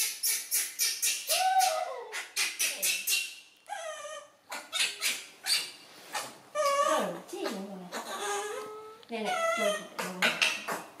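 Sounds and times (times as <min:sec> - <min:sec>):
baby monkey crying: 0:00.0 - 0:11.0.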